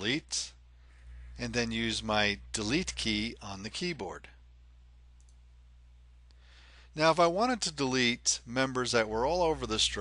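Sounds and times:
low steady hum: 0.0 - 10.0
computer mouse clicks: 5.2 - 5.4
short breath: 6.3 - 7.0.

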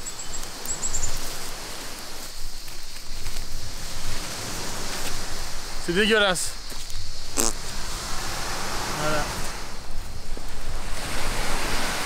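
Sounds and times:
high insect chirps: 0.0 - 12.0.

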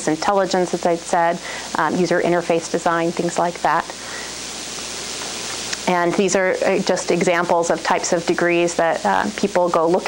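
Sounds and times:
steady background hiss: 0.0 - 10.0
person speaking: 5.7 - 10.0.

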